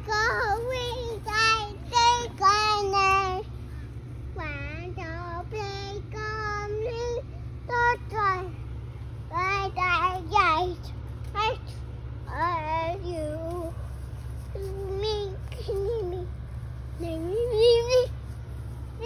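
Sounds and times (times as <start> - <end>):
toddler girl singing wordlessly: 0.0 - 3.5, 4.3 - 8.6, 9.3 - 13.8, 14.5 - 16.3, 17.0 - 18.2.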